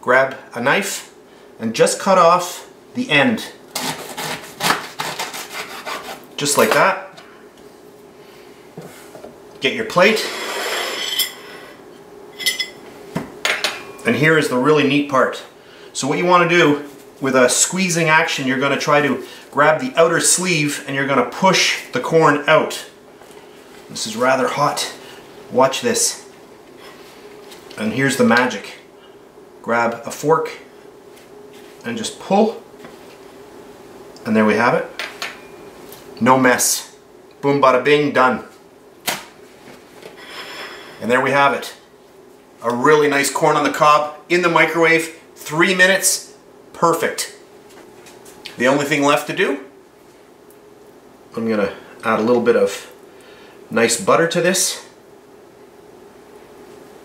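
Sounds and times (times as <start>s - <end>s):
plate sliding across tabletop: 10.2s - 11.8s, 40.2s - 41.0s.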